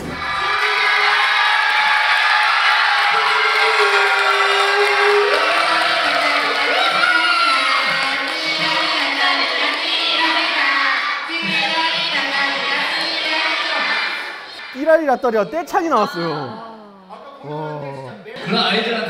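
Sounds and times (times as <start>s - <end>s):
children cheering and shouting: 0.2s - 15.4s.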